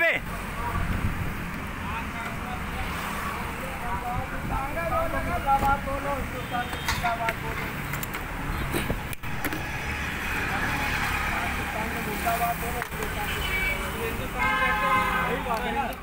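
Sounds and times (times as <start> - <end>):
road traffic passing: 0.0 - 16.0.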